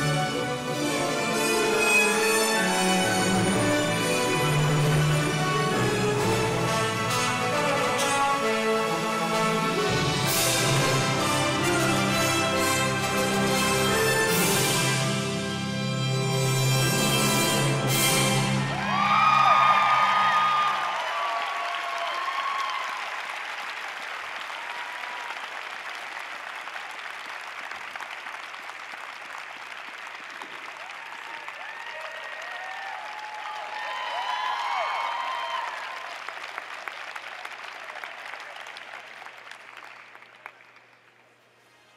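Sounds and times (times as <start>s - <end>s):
crowd cheering: 18.5s - 41.1s
audience applauding: 18.6s - 41.6s.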